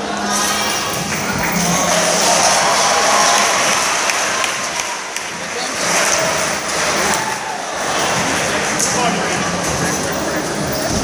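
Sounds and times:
crowd noise: 0.0s - 11.0s
applause: 2.0s - 8.4s.

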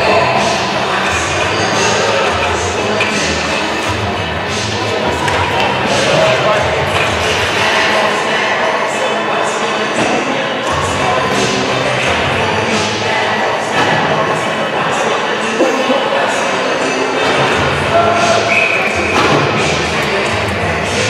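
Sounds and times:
crowd voices: 0.0s - 21.0s
music over public address: 0.0s - 21.0s.

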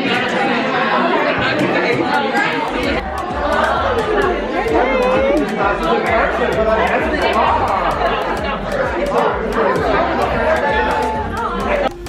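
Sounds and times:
background music with steady beat: 0.0s - 12.0s
many voices chattering: 0.0s - 12.0s.

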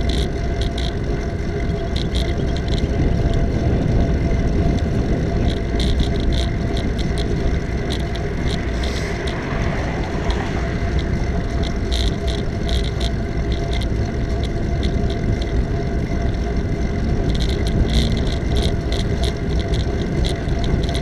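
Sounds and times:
bicycle tyre rumble: 0.0s - 21.0s
wind buffeting microphone: 0.0s - 21.0s
light rattling clicks: 4.6s - 21.0s.

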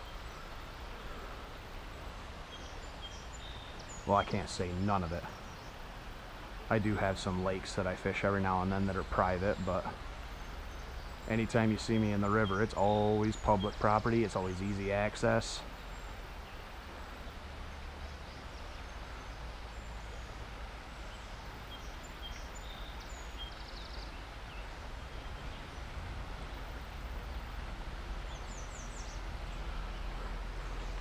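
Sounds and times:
river water flowing: 0.0s - 31.0s
bird chirps: 6.8s - 17.4s, 18.0s - 25.9s, 26.5s - 31.0s.

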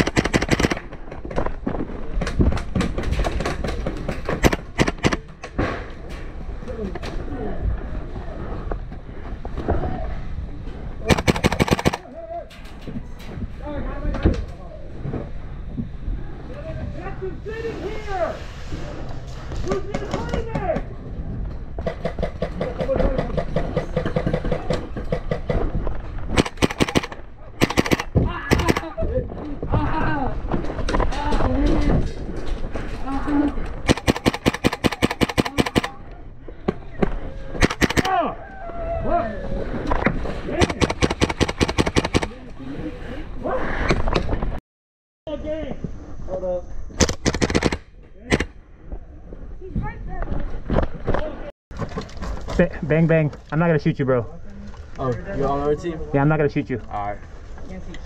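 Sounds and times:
airsoft rifle firing bursts: 0.0s - 0.9s, 4.4s - 5.2s, 11.1s - 12.0s, 26.3s - 28.9s, 33.9s - 36.0s, 37.6s - 38.1s, 40.6s - 42.3s, 47.0s - 48.4s.

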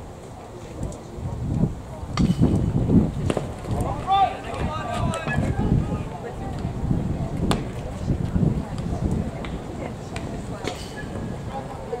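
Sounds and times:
wind buffeting microphone: 0.8s - 12.0s.

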